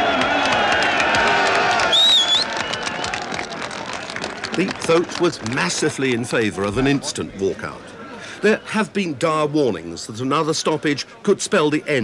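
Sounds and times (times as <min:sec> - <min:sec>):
crowd cheering: 0:00.0 - 0:06.8
shrill whistle: 0:01.9 - 0:03.2.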